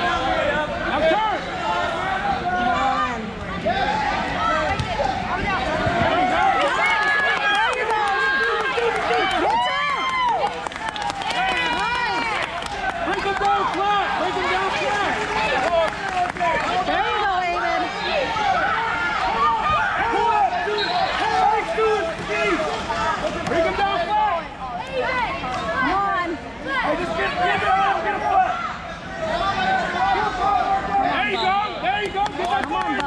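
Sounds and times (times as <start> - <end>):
crowd chatter: 0.0 - 33.0.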